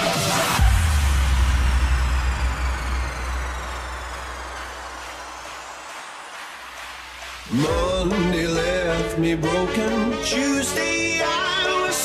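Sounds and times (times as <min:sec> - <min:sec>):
noise sweep with falling tones: 0:00.5 - 0:07.5.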